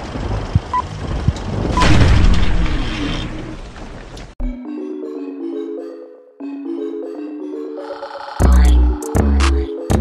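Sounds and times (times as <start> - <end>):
loud boom: 1.7 - 3.7.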